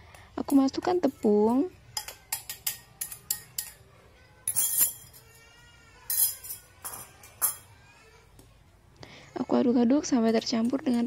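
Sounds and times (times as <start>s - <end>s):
metal spoon tapping on bowl: 2.0s - 3.8s.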